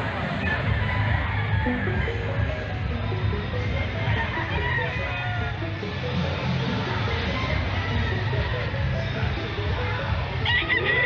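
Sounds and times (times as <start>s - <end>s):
rooster crowing: 0.4s - 2.3s, 4.0s - 5.6s, 10.4s - 11.0s.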